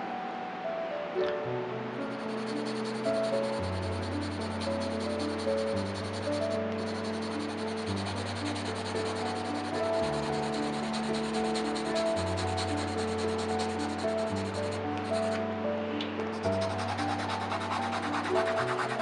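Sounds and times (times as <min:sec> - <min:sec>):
soft background music: 0:00.0 - 0:19.0
pencil scratching on paper: 0:02.2 - 0:15.4, 0:16.3 - 0:19.0.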